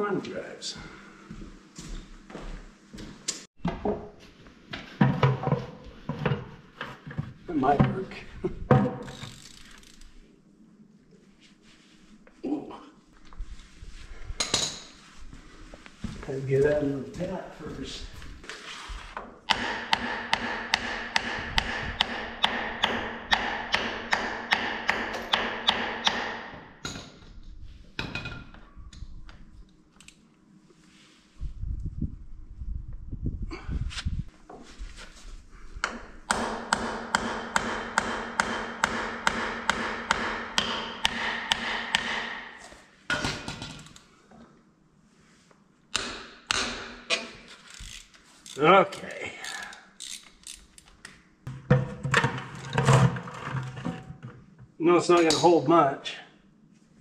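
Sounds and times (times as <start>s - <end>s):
metallic clicking of hand tool: 49.4s - 50.9s.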